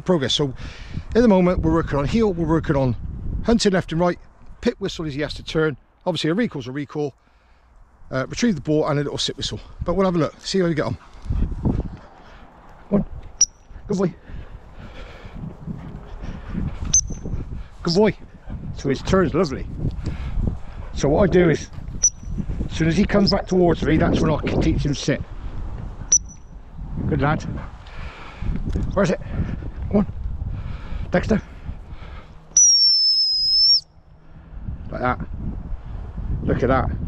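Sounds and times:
wind rumbling on microphone: 0.0s - 5.7s, 7.8s - 32.6s, 33.9s - 37.0s
shrill dog whistle pip: 32.6s - 33.9s.

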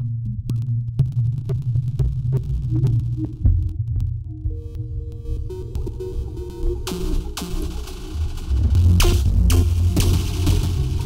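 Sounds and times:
throbbing bass drone: 0.0s - 11.0s.

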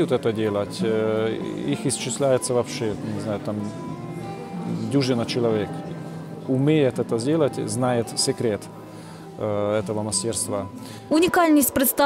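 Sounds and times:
man speaking: 0.0s - 3.8s
soft background music: 0.0s - 12.0s.

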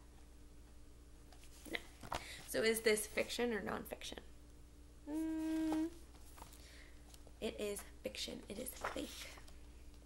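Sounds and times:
woman humming: 5.0s - 6.0s.

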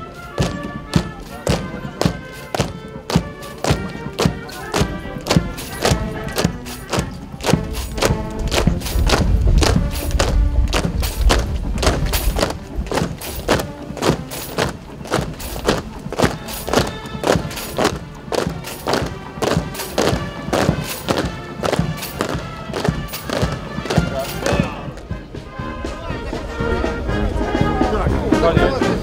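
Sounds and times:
brass band playing a march: 0.0s - 29.0s
marching footsteps: 0.0s - 29.0s
voices: 0.0s - 29.0s.

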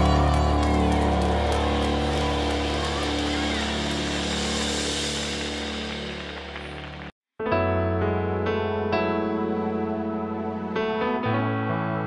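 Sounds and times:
bass and keyboard chord: 0.0s - 12.0s.

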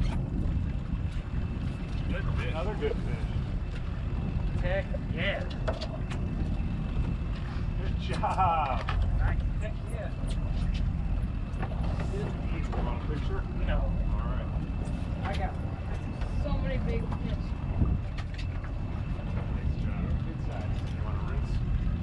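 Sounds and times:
boat engine rumble: 0.0s - 22.0s
wind on microphone: 0.0s - 22.0s.

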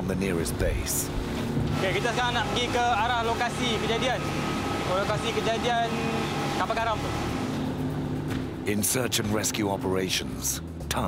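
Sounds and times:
speedboat outboard motors: 0.6s - 10.5s.

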